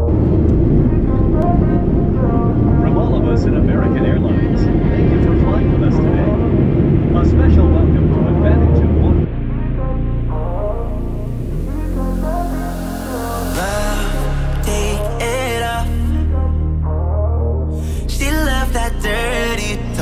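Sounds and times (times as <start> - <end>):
jet engine rumble: 0.0 - 15.6
people talking: 0.8 - 9.3, 13.6 - 16.0.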